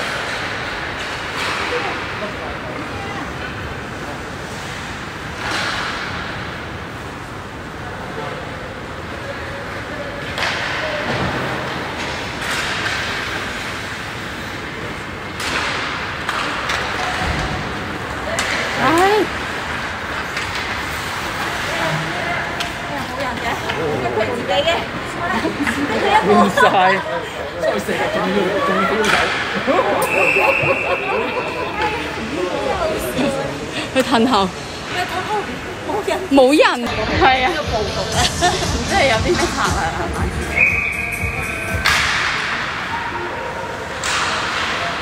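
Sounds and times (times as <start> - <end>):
hockey sticks and puck knocks: 10.2 - 14.0, 15.3 - 21.7, 41.7 - 42.8, 44.0 - 45.0
spectators talking: 16.1 - 45.0.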